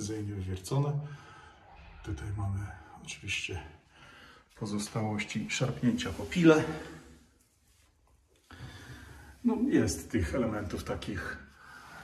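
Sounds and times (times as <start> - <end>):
soft breath: 1.0 - 2.1, 2.7 - 4.6, 6.2 - 7.6, 8.4 - 9.5, 11.5 - 12.0.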